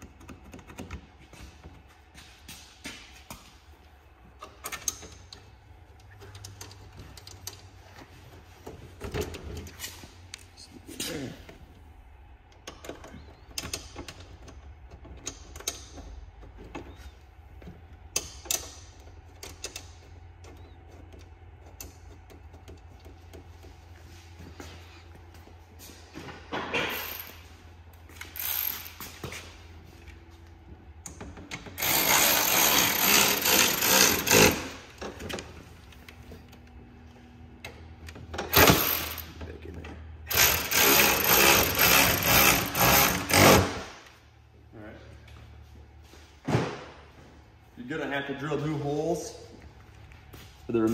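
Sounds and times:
power drill running: 31.8s - 34.8s, 38.5s - 39.2s, 40.3s - 43.8s.

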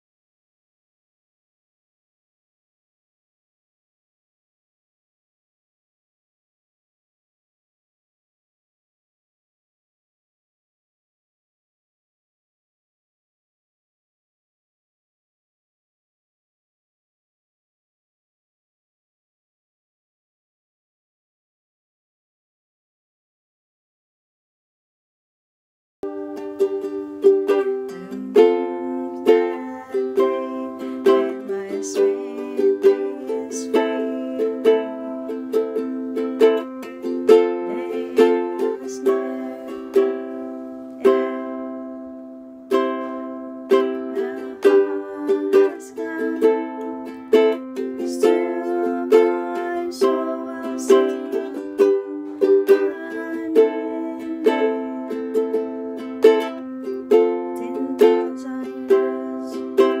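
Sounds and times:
ukulele strumming chords: 26.0s - 60.0s.

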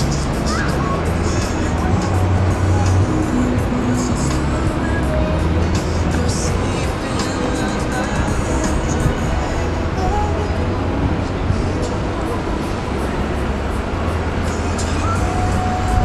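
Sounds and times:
background music: 0.0s - 16.0s
low rumble: 0.0s - 16.0s
murmur of voices: 0.0s - 16.0s.

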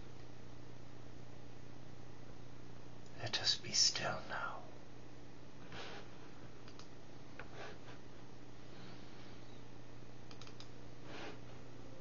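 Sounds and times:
steady low hum: 0.0s - 12.0s
light clicks: 6.6s - 6.9s, 10.3s - 10.8s.

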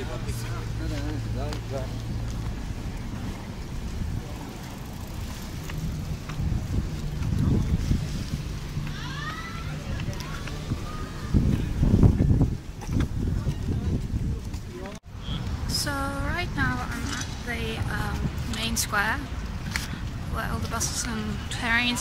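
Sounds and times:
passers-by voices: 0.0s - 22.0s
traffic rumble: 0.0s - 22.0s
wind on microphone: 2.0s - 22.0s.

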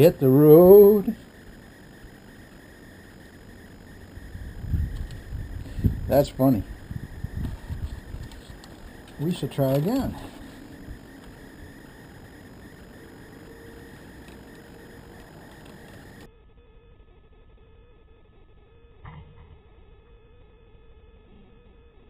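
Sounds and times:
faint outdoor background: 0.0s - 22.0s.

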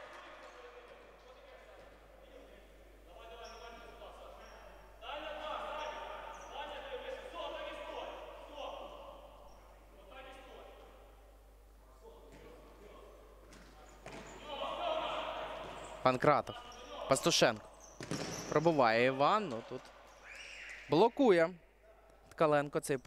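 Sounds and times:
players calling out in echoing hall: 0.0s - 23.0s
ball kicks: 13.5s - 14.4s, 18.0s - 18.7s.

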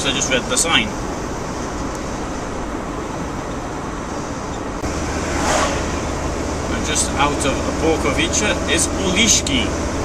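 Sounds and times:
road and engine noise: 0.0s - 10.0s
low hum: 1.4s - 8.1s
brief rushing swell: 4.8s - 6.9s.

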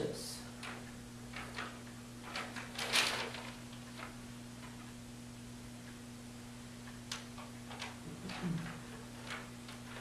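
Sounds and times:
faint room hiss: 0.0s - 10.0s
low electrical hum: 0.0s - 10.0s.

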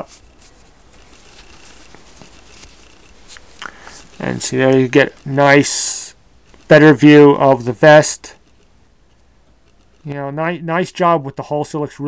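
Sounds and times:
fingers rustling cloth: 0.0s - 10.2s.

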